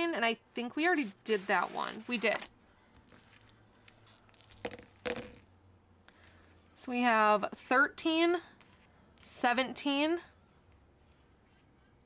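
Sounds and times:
dice knocks: 4.3 - 5.5.

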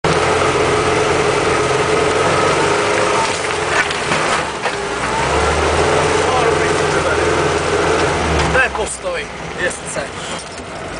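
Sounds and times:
drivetrain whine: 0.0 - 10.9
vehicle engine running: 0.0 - 10.9.

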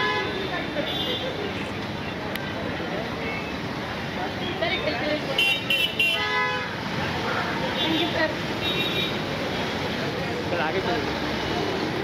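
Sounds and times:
busy street traffic: 0.0 - 12.0
crowd chatter: 0.0 - 12.0.

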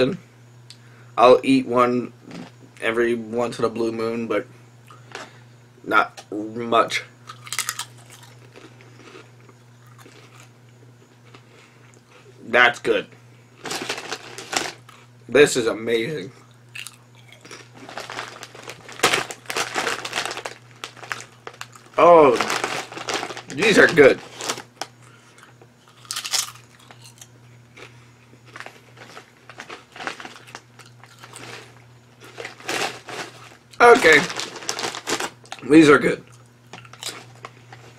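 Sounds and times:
potato chips crunching: 7.3 - 10.5, 13.6 - 15.1, 16.7 - 37.9.

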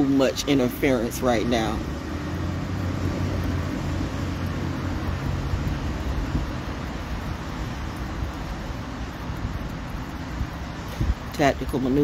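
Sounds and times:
noisy wash: 0.0 - 12.0
vehicle engine hum: 0.0 - 12.0.

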